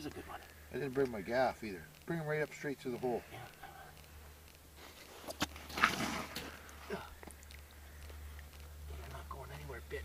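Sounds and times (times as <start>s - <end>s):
sharp clicks: 0.0s - 8.8s.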